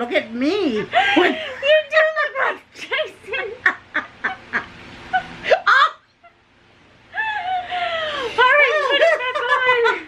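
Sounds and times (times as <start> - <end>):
women laughing: 0.9 - 1.8, 3.4 - 6.4, 7.2 - 10.0.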